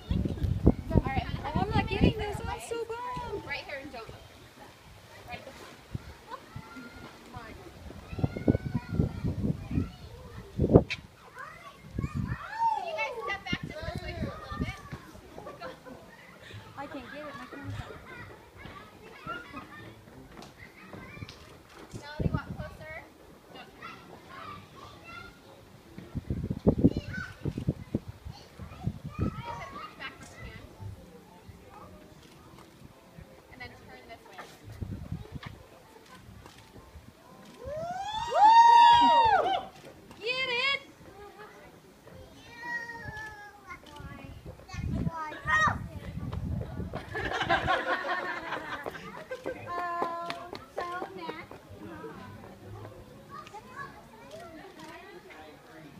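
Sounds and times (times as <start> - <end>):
faint chatter of voices: 0.0 - 55.9.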